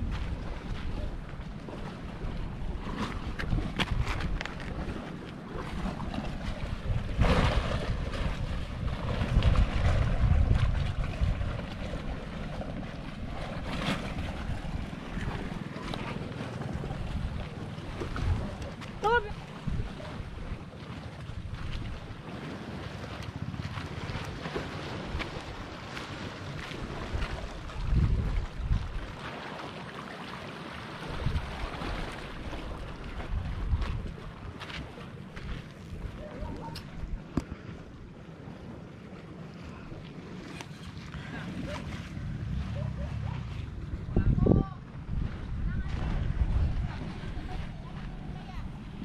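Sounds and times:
wind gusting on microphone: 0:00.0 - 0:20.6, 0:21.2 - 0:29.2, 0:31.0 - 0:49.0
sea waves against rocks: 0:00.0 - 0:49.0.

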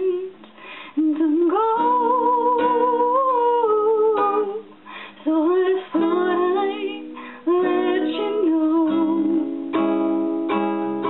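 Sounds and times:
woman singing folk song: 0:00.0 - 0:10.3
strummed acoustic guitar: 0:00.4 - 0:11.0.

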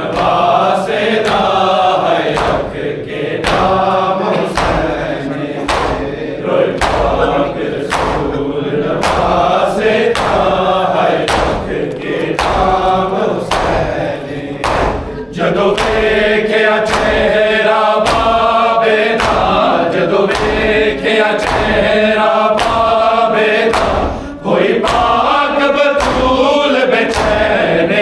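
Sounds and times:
hands slapping chests: 0:00.0 - 0:27.9
men chanting in unison: 0:00.0 - 0:28.0.

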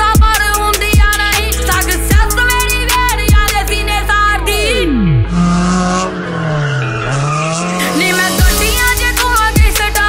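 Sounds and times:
car engine revving: 0:01.9 - 0:09.6
tyre squeal: 0:05.6 - 0:08.4.

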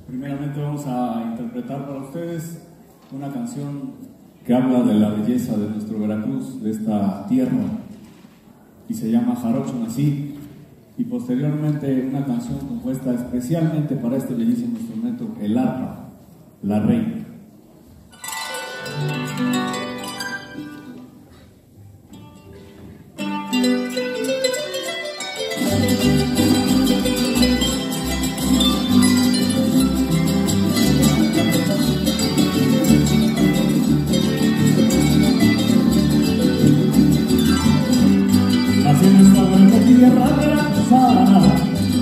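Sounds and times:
harp and guitars ensemble: 0:18.1 - 0:42.0
steady bass line: 0:25.6 - 0:42.0.

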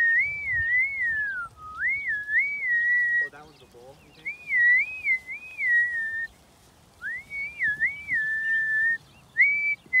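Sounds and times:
person whistling a tune: 0:00.0 - 0:03.3, 0:07.0 - 0:10.0.

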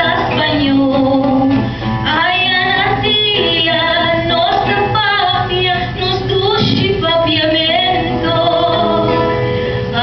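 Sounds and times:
nylon-string guitar: 0:00.0 - 0:10.0
woman singing into microphone: 0:00.0 - 0:10.0.

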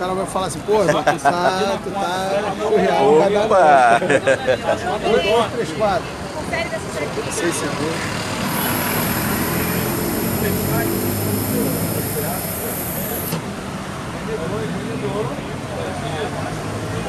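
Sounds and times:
high-pitched tone: 0:08.5 - 0:13.4.

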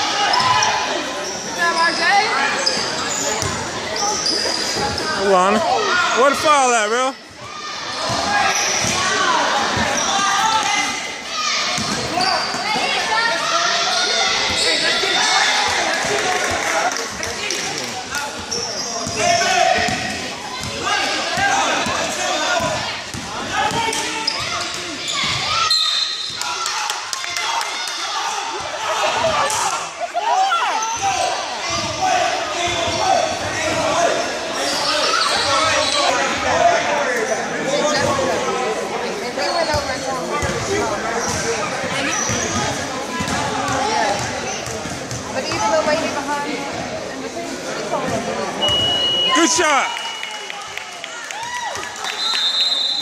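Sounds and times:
spectators' voices and shouts: 0:00.0 - 0:53.0.

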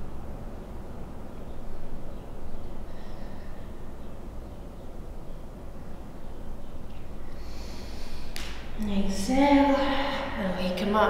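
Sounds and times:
low room hum: 0:00.0 - 0:11.0
woman inhaling through nose: 0:07.4 - 0:08.4.

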